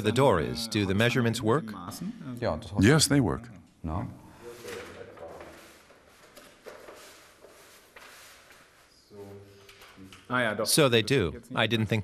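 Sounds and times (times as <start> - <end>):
paper sheets rustling: 4.4 - 10.3.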